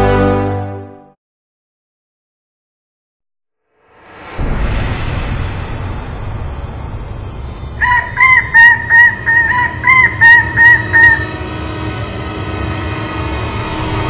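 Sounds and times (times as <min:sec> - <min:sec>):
low rumbling drone: 0:04.2 - 0:14.0.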